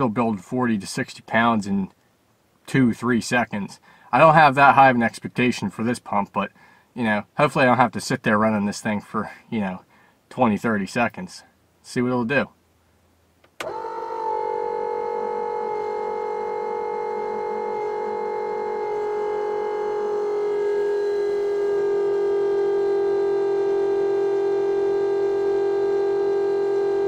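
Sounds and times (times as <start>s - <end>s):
electric oil pump whining: 13.6s - 27.0s.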